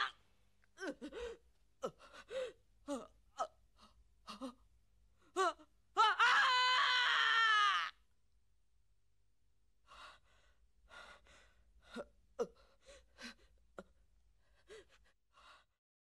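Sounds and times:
loud cry: 0:06.0 - 0:08.0.

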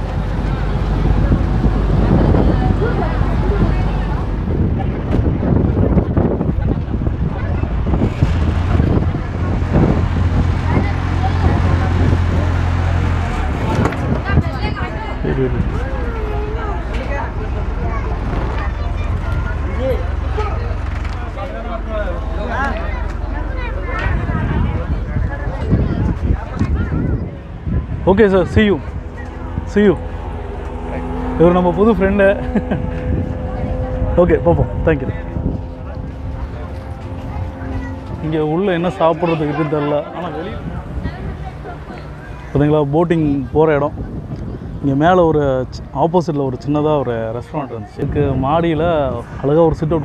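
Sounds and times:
speedboat engine idling: 0:00.0 - 0:50.0
voices: 0:00.0 - 0:50.0.

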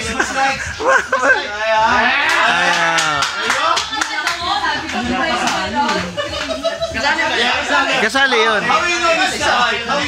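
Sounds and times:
excited voices: 0:00.0 - 0:10.0
hand claps: 0:02.2 - 0:06.6.

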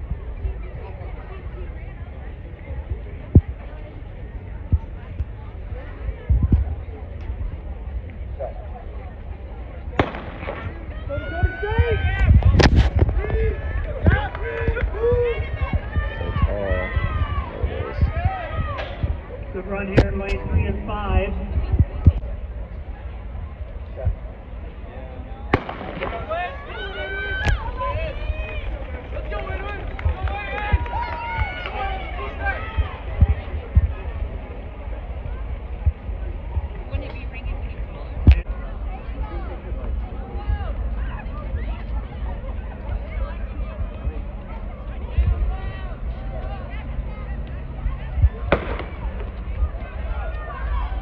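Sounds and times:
spectators shouting and cheering: 0:00.0 - 0:51.0
starting pistol shots: 0:10.0 - 0:10.8, 0:25.6 - 0:26.3.

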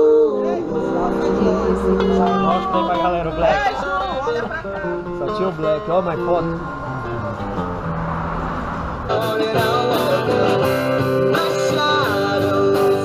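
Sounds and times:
person singing: 0:00.0 - 0:04.4, 0:09.1 - 0:13.0
live band playing surf music: 0:00.0 - 0:07.9, 0:09.1 - 0:13.0.

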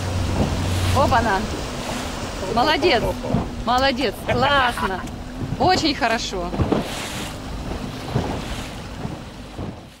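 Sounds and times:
low thumps: 0:00.0 - 0:10.0
outboard motor running: 0:00.0 - 0:10.0
wind noise on microphone: 0:03.2 - 0:10.0.

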